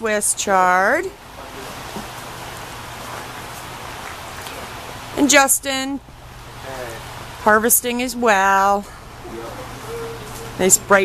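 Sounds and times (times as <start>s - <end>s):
steady hiss: 0.1s - 11.0s
faint low hum: 4.5s - 11.0s.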